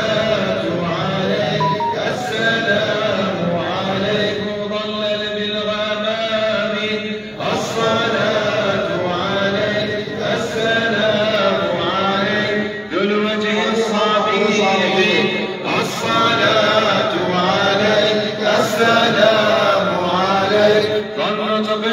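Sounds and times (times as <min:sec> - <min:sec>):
men chanting: 0:15.6 - 0:21.8.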